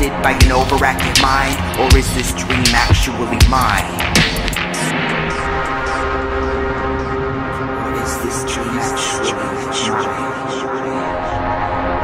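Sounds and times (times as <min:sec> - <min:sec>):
steady low bass: 0:00.0 - 0:12.0.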